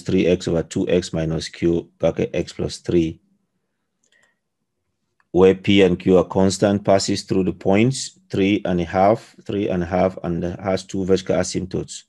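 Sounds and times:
faint click: 4.0s - 4.4s.

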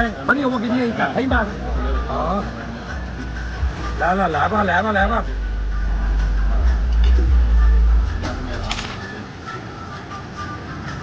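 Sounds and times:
faint voices: 0.0s - 11.0s
deep low rumble: 5.6s - 8.7s.

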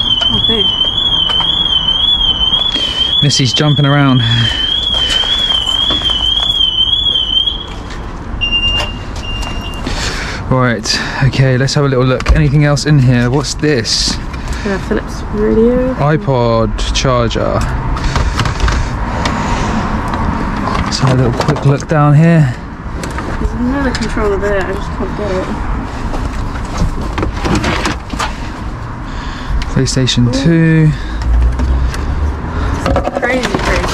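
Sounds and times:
warbling electronic alarm tone: 0.0s - 9.8s
steady beep: 0.0s - 9.9s
clicks and rustling of junk: 20.6s - 21.8s, 26.2s - 28.4s, 32.8s - 33.9s.

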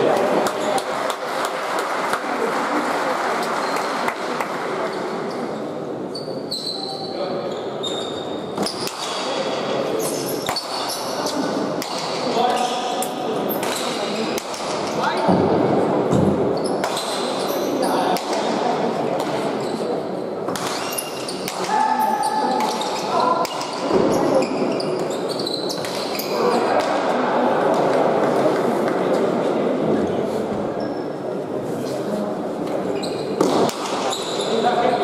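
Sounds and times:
spectator chatter: 0.0s - 35.0s.

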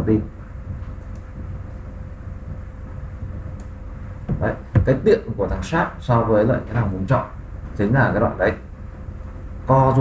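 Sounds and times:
faint steady hum: 0.0s - 10.0s
low background rumble: 0.0s - 10.0s.

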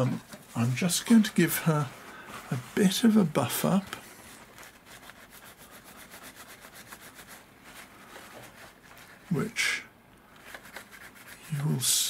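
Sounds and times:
paper towel rustling scrub: 0.0s - 12.0s.

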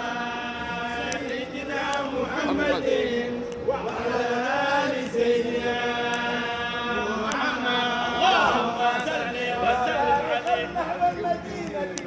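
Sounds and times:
men chanting in unison: 0.0s - 12.0s.

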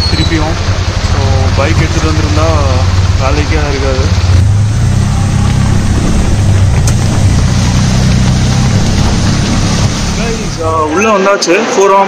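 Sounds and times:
heavy rain on wet road: 0.0s - 11.0s
auto-rickshaw engine running: 0.0s - 11.7s.

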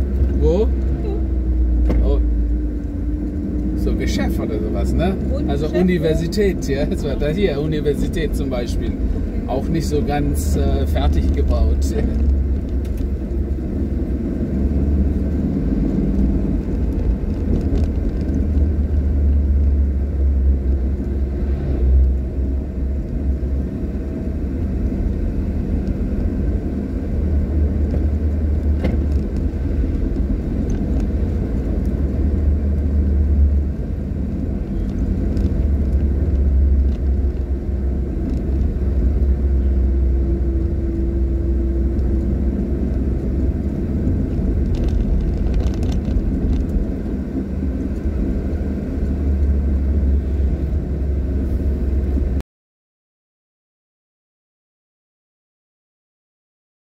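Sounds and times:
car engine rumble: 0.0s - 52.4s
tyre noise on paved road: 0.0s - 52.4s.

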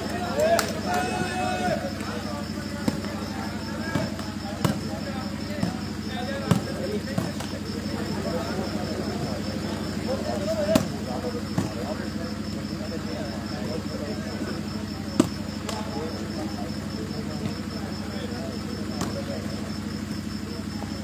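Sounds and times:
murmured voices: 0.0s - 21.0s
volleyball struck by hand: 2.8s - 7.6s, 10.6s - 11.8s, 15.2s - 15.9s, 19.0s - 19.3s.

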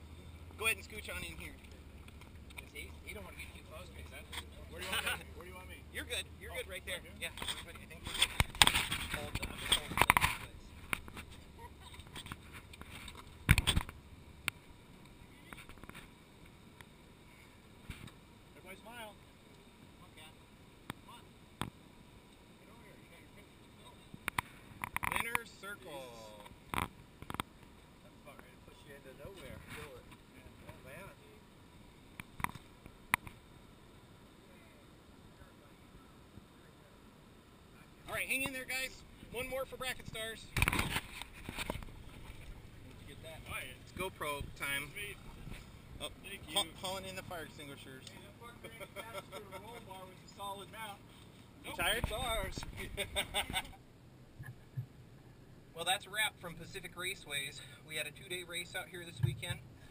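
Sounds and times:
rustling: 7.2s - 14.0s.

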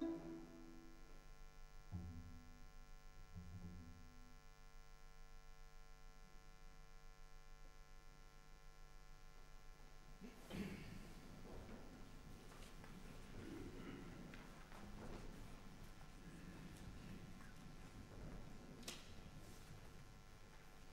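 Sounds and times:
soft low string notes: 0.0s - 1.1s, 1.9s - 4.3s
string quartet chord: 0.0s - 1.2s
steady low hum: 0.0s - 20.9s.

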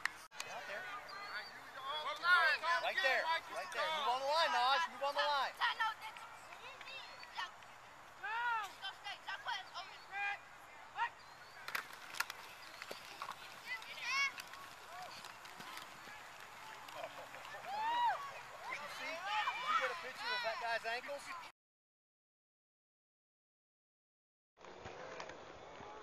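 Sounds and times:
people shouting and calling: 8.2s - 10.4s, 13.5s - 21.5s.

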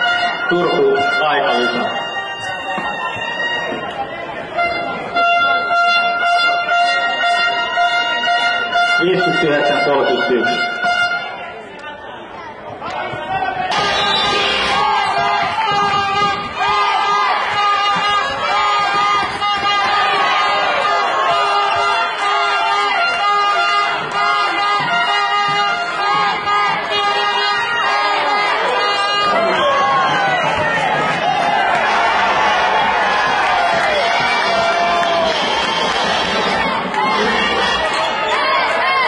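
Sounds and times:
music in a large hall: 0.0s - 11.8s, 13.2s - 39.0s
crowd chatter: 0.0s - 39.0s.

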